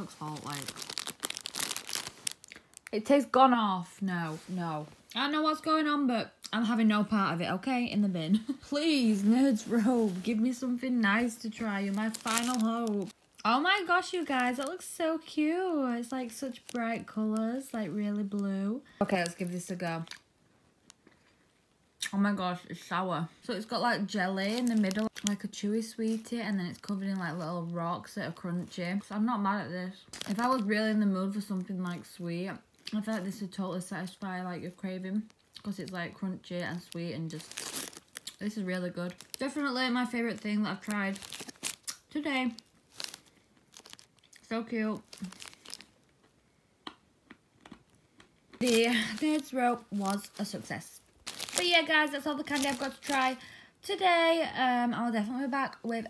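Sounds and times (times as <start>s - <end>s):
soft candy crunching: 0.0s - 3.1s, 10.2s - 22.1s, 23.6s - 29.2s, 29.9s - 53.4s.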